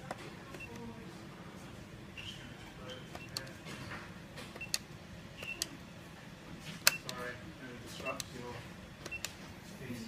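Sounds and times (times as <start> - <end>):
keypad buttons clicking: 3.1 - 3.6, 4.5 - 5.8, 6.8 - 7.2, 9.0 - 9.4.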